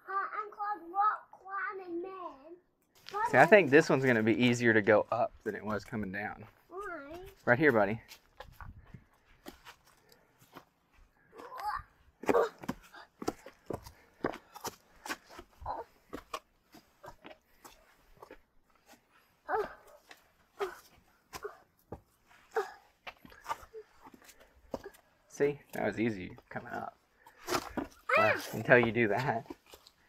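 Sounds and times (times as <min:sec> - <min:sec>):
shoes scuffing on stone steps: 0:07.1 - 0:11.6, 0:12.2 - 0:25.0, 0:26.5 - 0:30.0
small child grunting: 0:11.4 - 0:13.1, 0:19.5 - 0:21.7, 0:22.5 - 0:22.9, 0:28.1 - 0:28.6.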